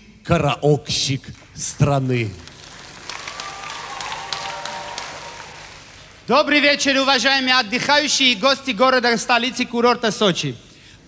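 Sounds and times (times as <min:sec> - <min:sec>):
audience applause: 0:02.4 - 0:06.8.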